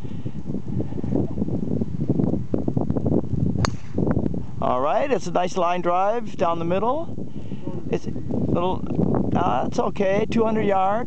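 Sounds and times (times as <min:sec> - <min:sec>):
wind buffeting microphone: 0:00.0 - 0:11.0
golf driver striking ball: 0:03.6 - 0:04.0.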